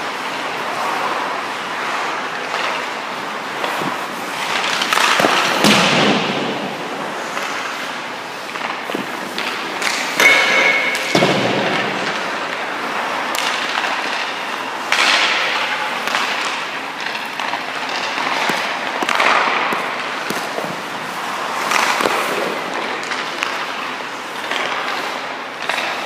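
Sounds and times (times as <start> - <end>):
skate blades scraping ice: 0.0 - 26.0.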